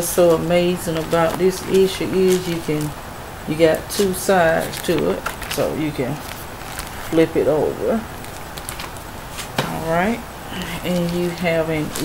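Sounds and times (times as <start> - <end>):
woman's voice: 0.0 - 6.2, 7.1 - 8.1, 9.6 - 12.0
magazines being handled: 8.2 - 9.7.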